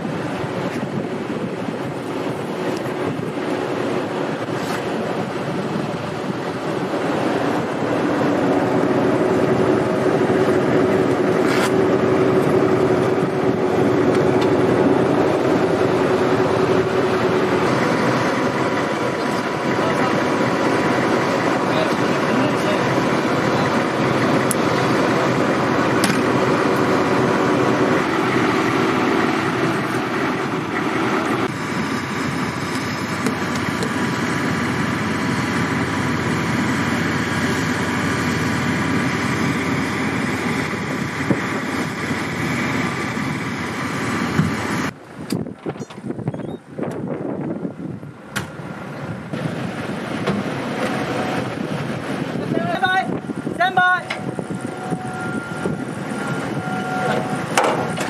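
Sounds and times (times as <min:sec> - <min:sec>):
engine running steadily: 0:00.0 - 0:58.0
uneven outdoor sound: 0:00.0 - 0:58.0.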